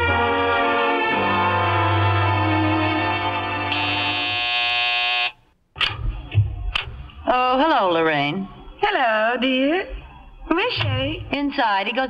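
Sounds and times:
organ chords: 0.0s - 5.3s
low thumps: 5.8s - 7.8s, 9.8s - 12.0s.

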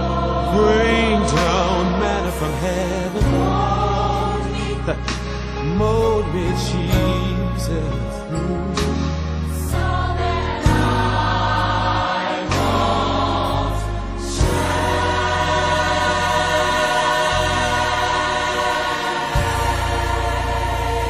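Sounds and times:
band accompaniment: 0.0s - 21.0s
gospel choir singing: 0.0s - 21.0s.

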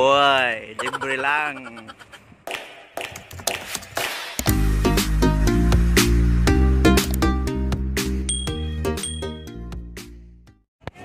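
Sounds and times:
sharp taps and clicks: 2.4s - 4.2s.

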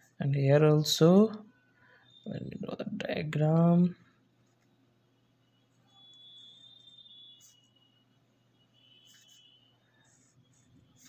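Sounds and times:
ballpoint pen scratching on paper: 9.0s - 11.0s.

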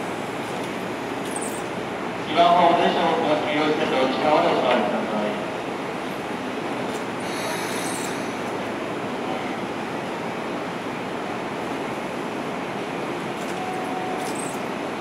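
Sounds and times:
brief high hiss: 7.2s - 8.4s.

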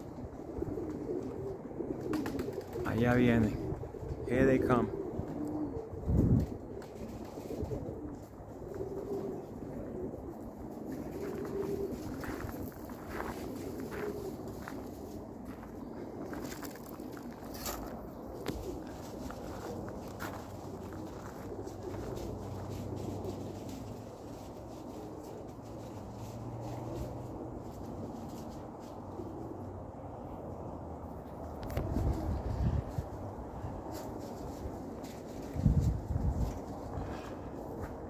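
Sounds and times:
pigeons cooing: 0.0s - 38.0s.

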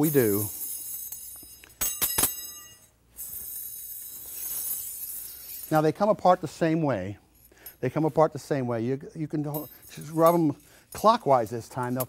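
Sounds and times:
metal rings clinking: 0.0s - 8.1s, 9.3s - 12.0s.

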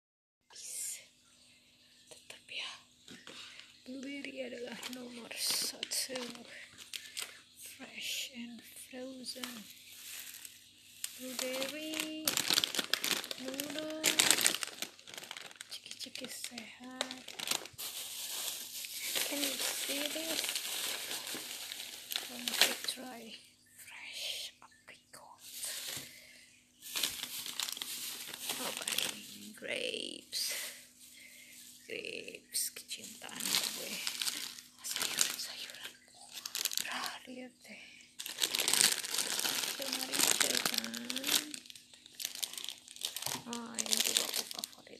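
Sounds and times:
faint steady hum: 0.5s - 44.9s
person whispering: 2.1s - 2.9s, 13.2s - 14.5s, 19.1s - 20.5s, 22.2s - 26.0s, 34.8s - 38.0s, 39.8s - 41.6s, 43.3s - 44.9s
plastic packaging crinkling: 3.0s - 23.4s, 25.2s - 37.4s, 38.0s - 44.9s.

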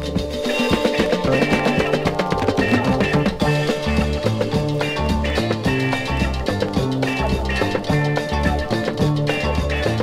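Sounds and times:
bass line: 0.0s - 10.0s
drum kit beat: 0.0s - 10.0s
held melodic notes: 0.0s - 10.0s.

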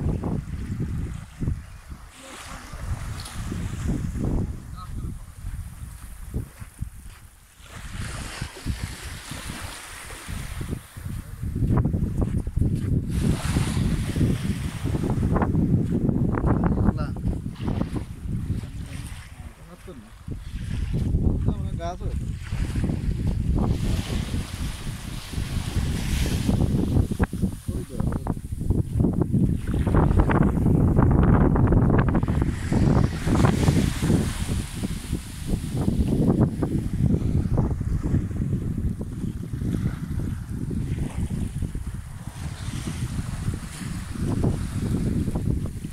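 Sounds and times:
small waves washing on sand: 0.0s - 45.9s
wind buffeting microphone: 0.0s - 45.9s.

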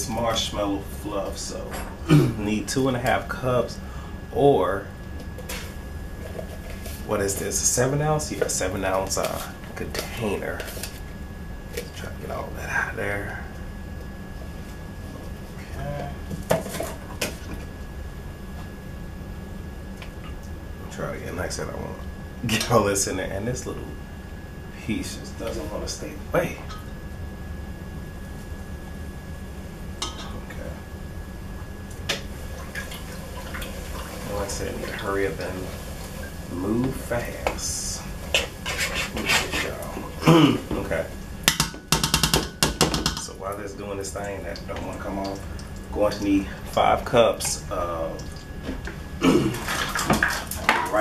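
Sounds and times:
low steady hum: 0.0s - 51.0s
metal spoon scraping a pot: 38.3s - 39.8s
utensil knocking on metal pot: 41.5s - 43.2s.

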